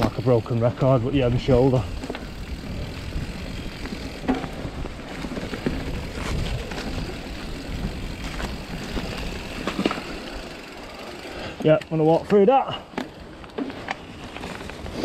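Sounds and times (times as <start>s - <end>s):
bike knocks and rattles: 0.0s - 10.8s
bike tyres rumbling on dirt: 0.0s - 15.0s
wind on microphone: 1.1s - 9.3s.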